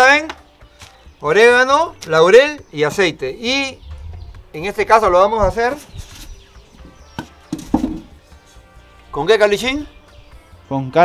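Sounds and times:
metal bowl knocking on wood: 0:07.1 - 0:08.2.

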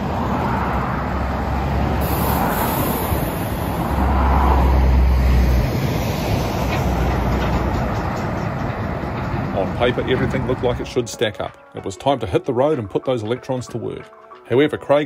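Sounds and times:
truck and cars going past: 0:00.0 - 0:12.0
highway traffic passing: 0:00.0 - 0:14.8.

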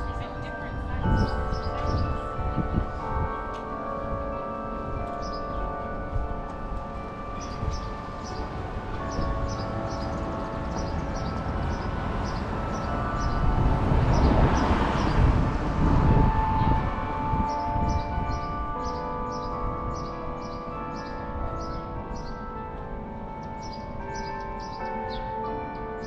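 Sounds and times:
carillon bells playing a tune: 0:00.0 - 0:26.0
passing traffic rushing: 0:00.0 - 0:26.0.

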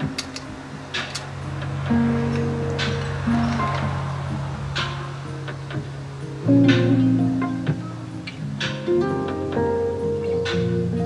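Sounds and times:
soft guitar plucking: 0:00.0 - 0:11.0.

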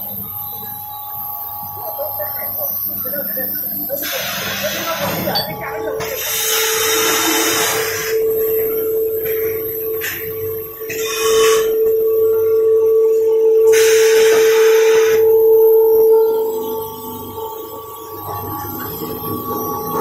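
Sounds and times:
machine motor whine: 0:00.0 - 0:20.0.

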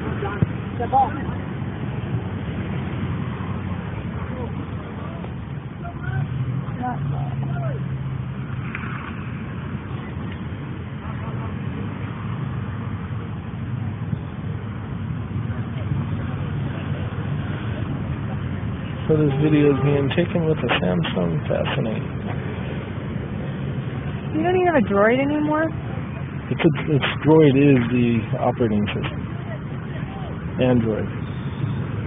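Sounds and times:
steady rumbling noise: 0:00.0 - 0:32.0
distant voices calling out: 0:15.6 - 0:32.0.

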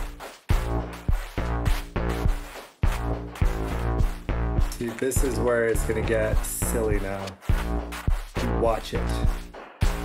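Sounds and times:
electronic beat: 0:00.0 - 0:10.0.

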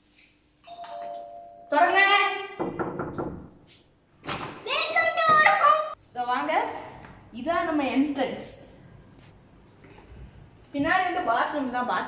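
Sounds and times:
doorbell ding-dong chime: 0:00.7 - 0:01.8.

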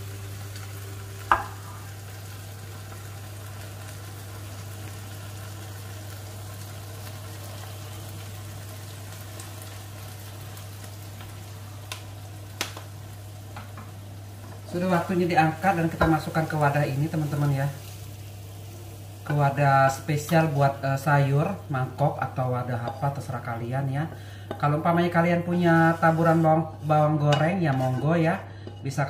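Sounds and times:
food sizzling in frying pan: 0:00.0 - 0:29.0.

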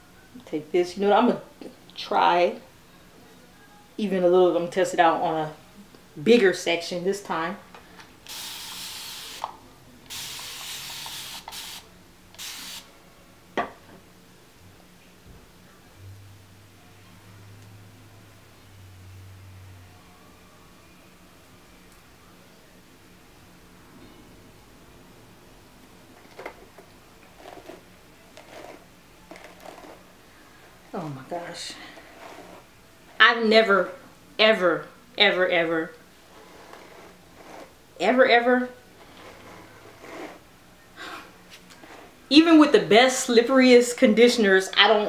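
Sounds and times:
spray bottle hissing: 0:08.3 - 0:09.5, 0:10.1 - 0:12.9.

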